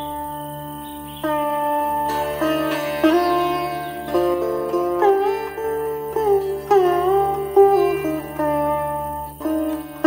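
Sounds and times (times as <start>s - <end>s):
plucked string notes: 0.0s - 10.0s.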